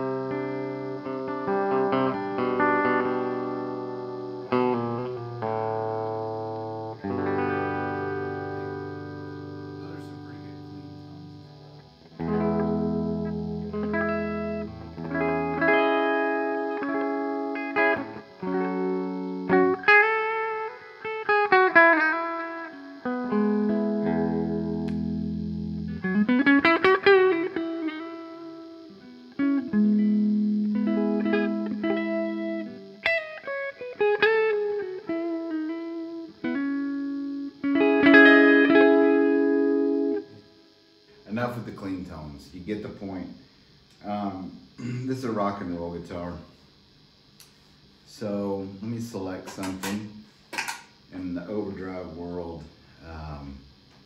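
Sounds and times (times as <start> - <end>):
clean electric guitar playing: 0.0 - 42.2.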